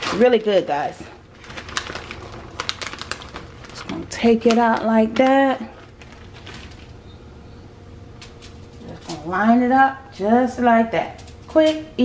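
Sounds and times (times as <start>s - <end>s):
bacon rustling on foil: 0.0s - 7.0s
low steady hum: 0.0s - 12.0s.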